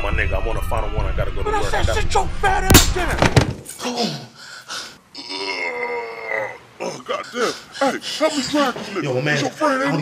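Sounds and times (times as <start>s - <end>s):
man groaning: 3.8s - 4.4s, 5.2s - 8.4s.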